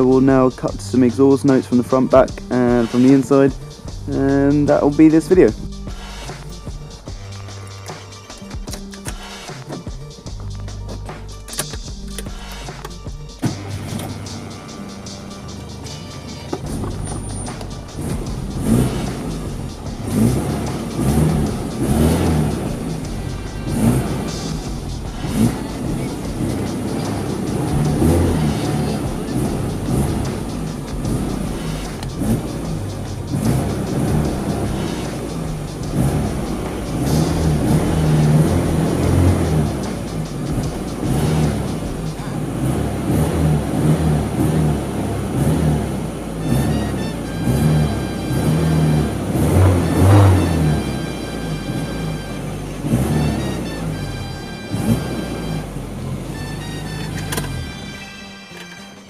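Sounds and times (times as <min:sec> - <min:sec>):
car engine revving: 0:00.0 - 0:58.7
background music: 0:00.0 - 0:59.0.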